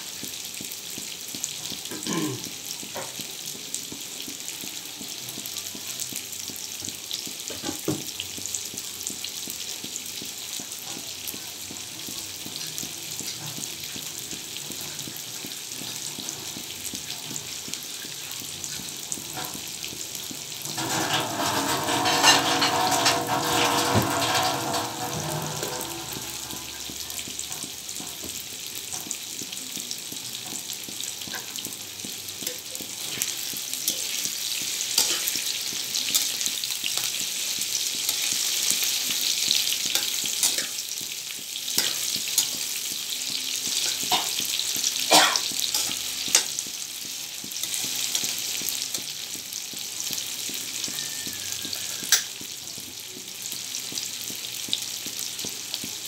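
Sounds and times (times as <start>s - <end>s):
tofu sizzling in oil: 0.0s - 56.0s
spatula clicking and scraping: 20.7s - 29.2s, 29.8s - 46.8s.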